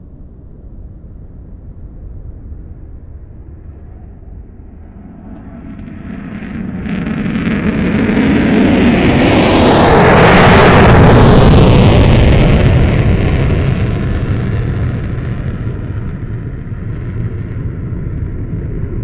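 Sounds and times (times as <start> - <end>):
jet engines roaring with afterburner: 0.0 - 19.0.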